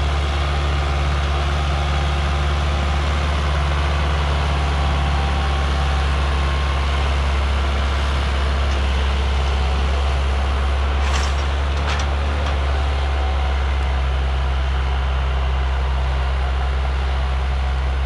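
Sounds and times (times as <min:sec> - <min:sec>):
tractor diesel engine droning: 0:00.0 - 0:18.0.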